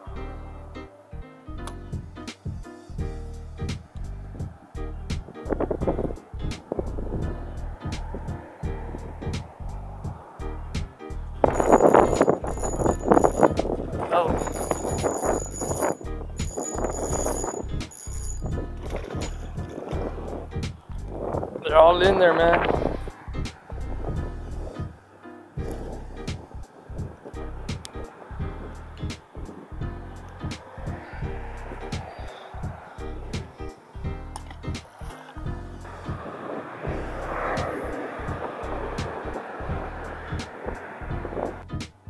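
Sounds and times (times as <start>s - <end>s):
song with a beat: 1.7s - 5.6s.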